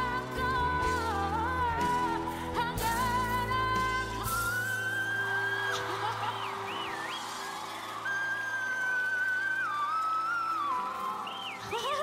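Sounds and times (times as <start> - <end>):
woman singing: 0.0 - 6.8, 11.6 - 12.0
backing music: 0.0 - 12.0.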